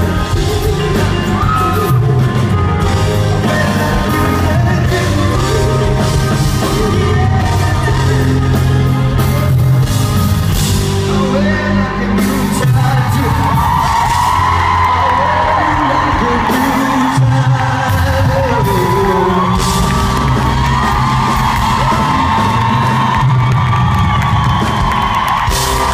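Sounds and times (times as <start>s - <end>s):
man singing long notes: 0.0s - 9.8s, 11.0s - 13.9s, 14.9s - 20.2s
bass: 0.0s - 25.9s
drums: 0.0s - 25.9s.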